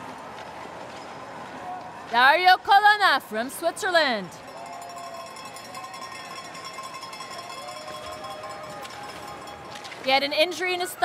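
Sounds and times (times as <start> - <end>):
faint crowd noise: 0.0 - 11.0
cowbells ringing: 4.4 - 10.2.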